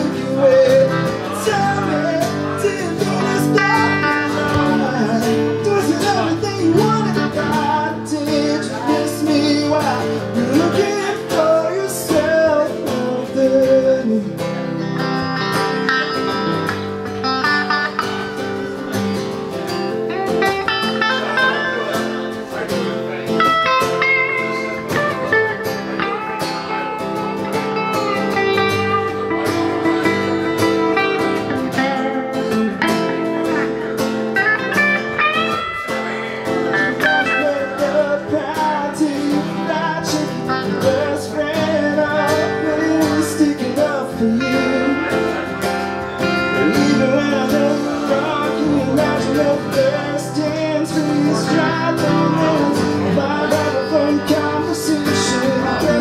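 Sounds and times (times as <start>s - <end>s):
man singing: 0.0s - 19.0s, 19.6s - 56.0s
acoustic guitar playing: 0.0s - 56.0s
electric guitar playing: 0.0s - 56.0s.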